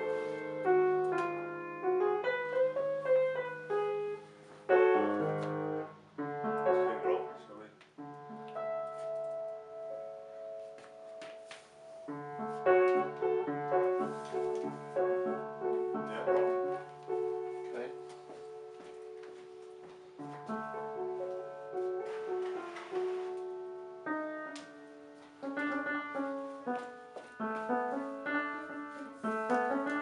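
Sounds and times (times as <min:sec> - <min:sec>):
acoustic piano chords: 0:00.0 - 0:30.0.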